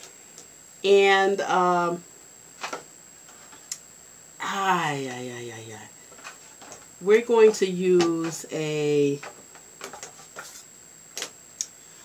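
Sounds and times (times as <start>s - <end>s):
makeup items clicking and tapping: 7.4s - 8.5s.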